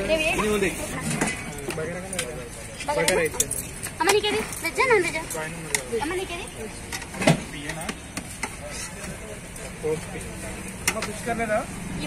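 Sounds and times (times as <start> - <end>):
low traffic hum: 0.0 - 12.0
voices chattering: 0.0 - 12.0.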